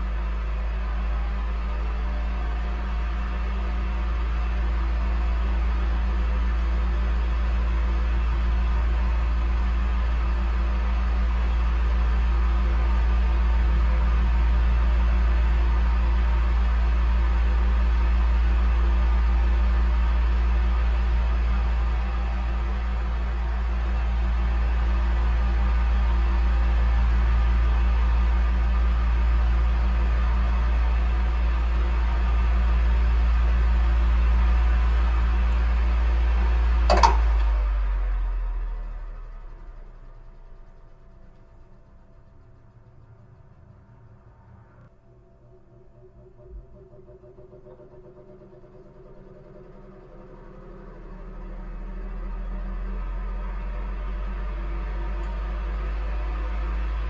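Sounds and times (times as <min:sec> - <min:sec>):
electric fan running: 0:00.0 - 0:57.0.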